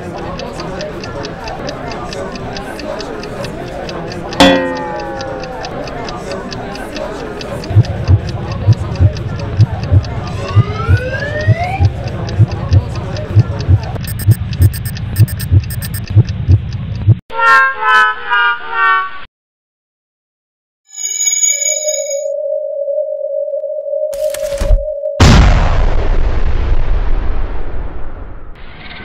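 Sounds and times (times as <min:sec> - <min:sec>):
background murmur: 0:00.0 - 0:14.9
clock ticking: 0:00.0 - 0:17.2
falling pitch sound effect: 0:04.4 - 0:05.8
heartbeat-like low thumps: 0:07.6 - 0:17.2.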